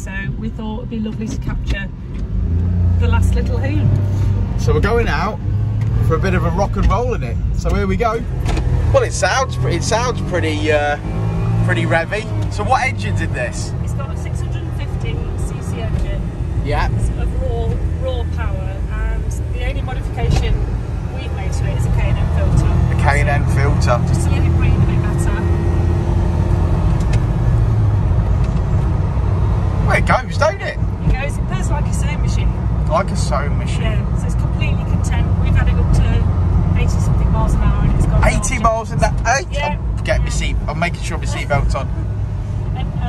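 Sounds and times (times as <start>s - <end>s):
road noise inside cab: 0.0s - 43.0s.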